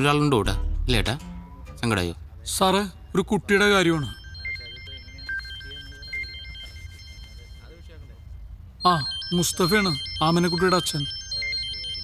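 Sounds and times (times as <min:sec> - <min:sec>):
mobile phone ringtone melody: 0:03.6 - 0:12.0.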